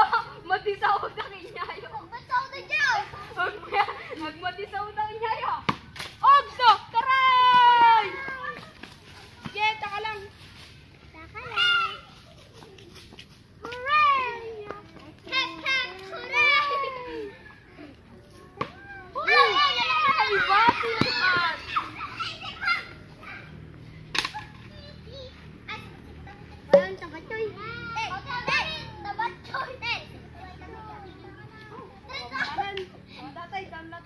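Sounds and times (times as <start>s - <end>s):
children shouting at play: 0.0s - 4.2s, 6.2s - 9.9s, 11.1s - 33.4s
faint background noise: 0.0s - 34.0s
child yelling: 18.8s - 23.5s.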